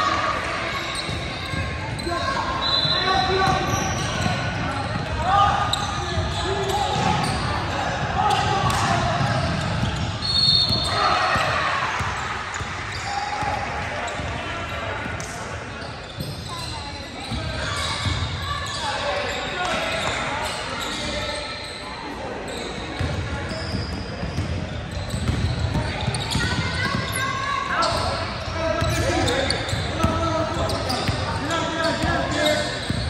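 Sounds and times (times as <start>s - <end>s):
echoing shouts and voices: 0.0s - 33.0s
basketball bouncing: 24.2s - 27.1s.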